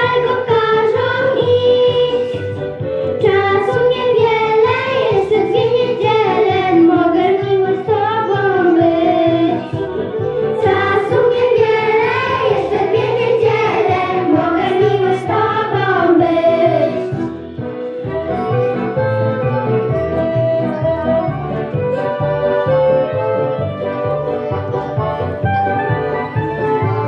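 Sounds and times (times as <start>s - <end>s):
girls singing together: 3.2s - 9.8s, 10.6s - 17.2s.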